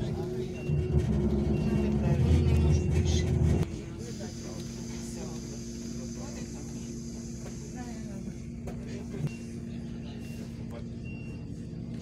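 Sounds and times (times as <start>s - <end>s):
bus engine rumbling: 0.0s - 12.0s.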